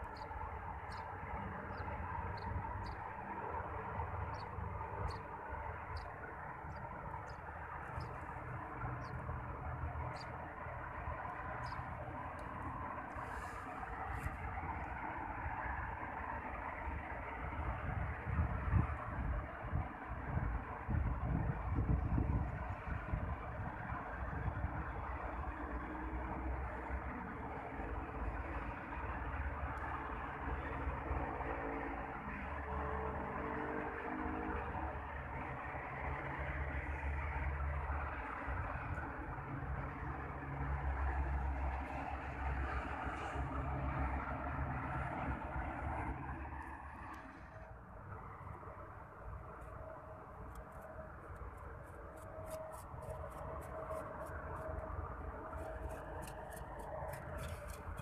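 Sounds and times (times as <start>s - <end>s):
low traffic rumbles: 0.0s - 58.0s
road traffic hum: 0.0s - 58.0s.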